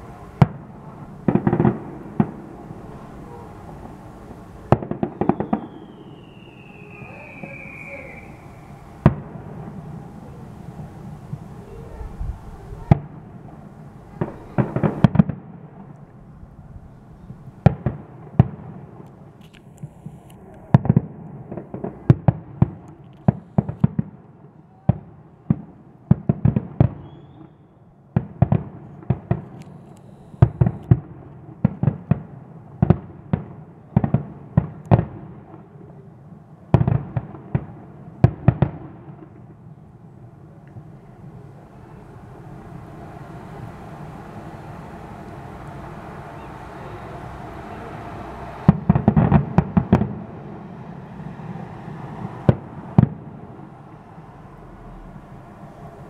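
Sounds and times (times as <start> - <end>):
fireworks bursting with sharp bangs: 0.0 - 56.0
low steady background noise: 0.0 - 56.0.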